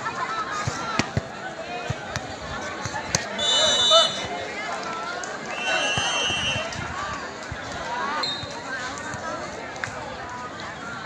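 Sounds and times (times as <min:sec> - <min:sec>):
spectators chattering: 0:00.0 - 0:11.0
referee whistle blast: 0:03.4 - 0:04.2, 0:05.6 - 0:06.7.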